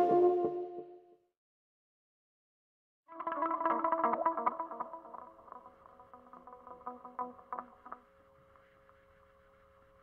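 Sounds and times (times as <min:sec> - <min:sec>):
electric guitar with chorus and echo: 0:03.1 - 0:10.0.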